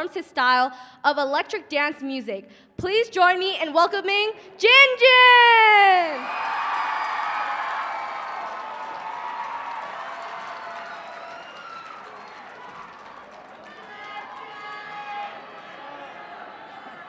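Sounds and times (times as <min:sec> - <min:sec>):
audience cheering and clapping: 0:06.2 - 0:17.0.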